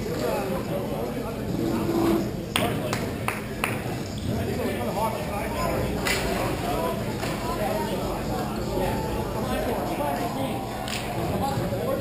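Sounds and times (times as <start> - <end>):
players' voices and shouts: 5.1 - 12.0.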